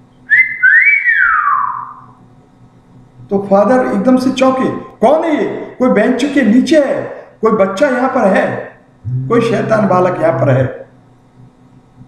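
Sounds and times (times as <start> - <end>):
man whistling: 0.2 - 2.1.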